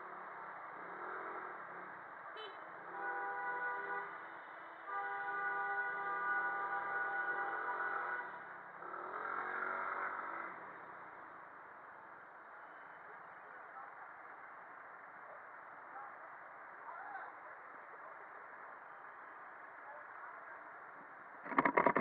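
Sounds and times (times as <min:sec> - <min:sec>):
vehicle horn: 0:02.4 - 0:04.2, 0:04.9 - 0:08.4
traffic and wind hiss: 0:03.8 - 0:21.4.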